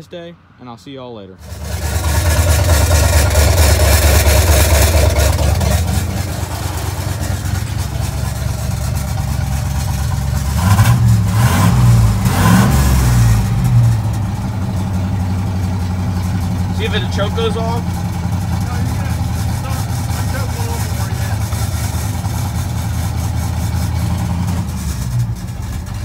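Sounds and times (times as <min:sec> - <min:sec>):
truck engine idling and revving: 0:01.4 - 0:26.0.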